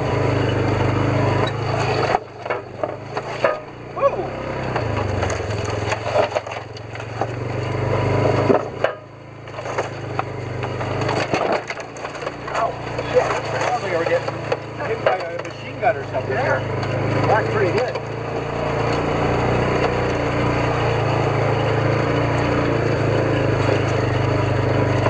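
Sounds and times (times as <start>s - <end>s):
vehicle engine humming: 0.0s - 25.0s
branches cracking and scraping: 0.5s - 25.0s.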